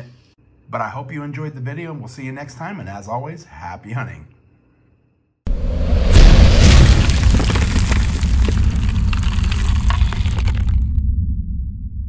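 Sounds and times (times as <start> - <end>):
deep rumbling boom: 5.5 - 12.0
crackling crumbling debris: 6.6 - 11.0.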